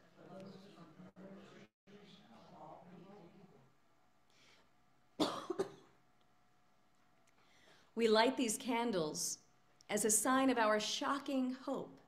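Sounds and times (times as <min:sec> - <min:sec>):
person coughing: 0:05.2 - 0:06.0.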